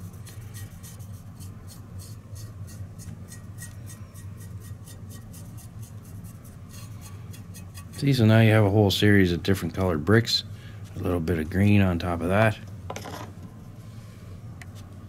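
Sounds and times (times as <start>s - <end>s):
paintbrush scrubbing: 0.0s - 8.4s
steady low hum: 0.0s - 15.0s.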